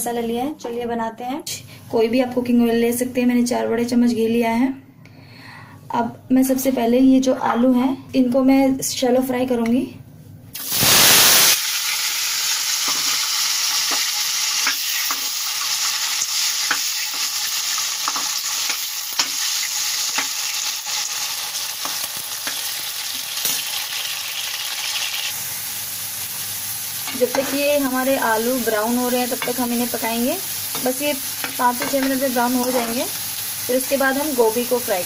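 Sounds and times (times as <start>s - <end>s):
potatoes sizzling in hot fat: 10.6s - 35.0s.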